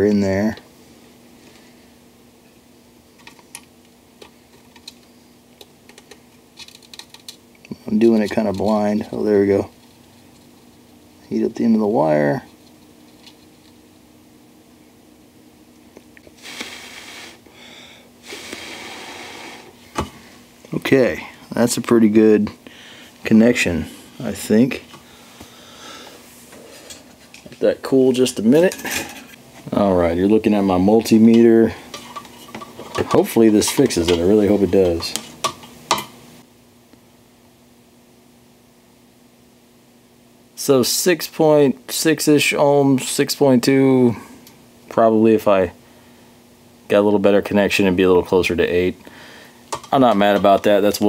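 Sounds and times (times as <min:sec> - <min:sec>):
faint steady hum: 0:00.0 - 0:51.0
hissy breaths through the nose: 0:16.4 - 0:19.8.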